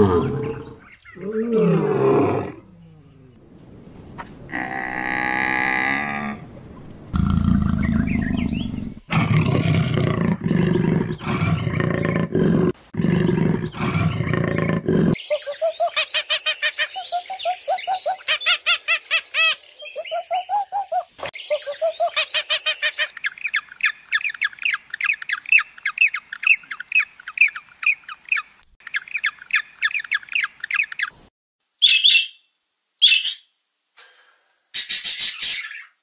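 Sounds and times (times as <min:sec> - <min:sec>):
rising and falling animal calls: 0:00.0 - 0:03.4, 0:04.1 - 0:23.2.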